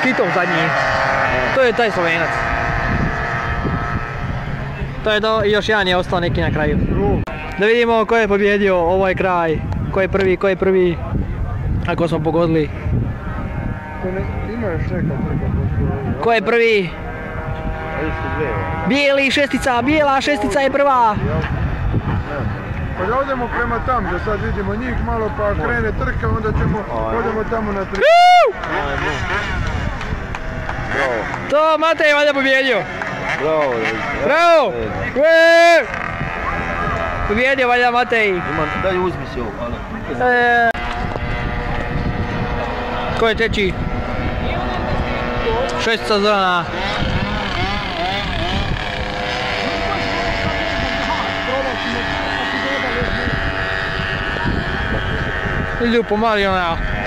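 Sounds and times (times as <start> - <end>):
people talking: 0.0 - 17.0, 17.8 - 57.0
motorcycle engines droning: 0.0 - 57.0
race background noise: 0.0 - 57.0
low rumble: 8.1 - 18.9
spectator shouting: 27.9 - 28.8.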